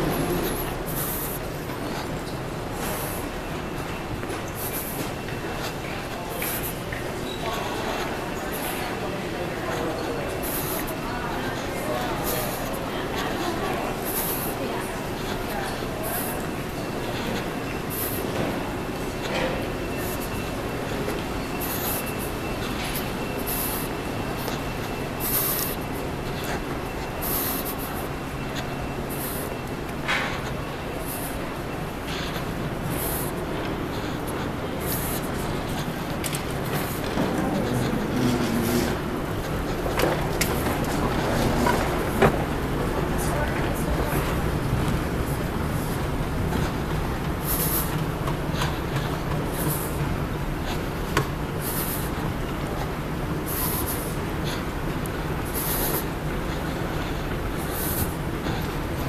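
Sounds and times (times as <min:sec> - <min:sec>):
low rumble and hiss of terminal hall: 0:00.0 - 0:59.0
steady mechanical hum: 0:00.0 - 0:59.0.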